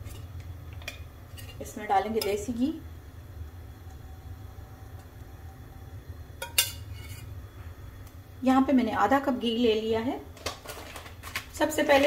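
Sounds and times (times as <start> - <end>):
steady low hum: 0.0 - 10.4.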